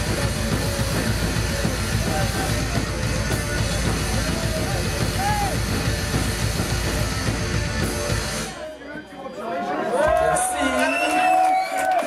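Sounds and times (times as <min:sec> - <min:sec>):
punk band playing loud: 0:00.0 - 0:08.6.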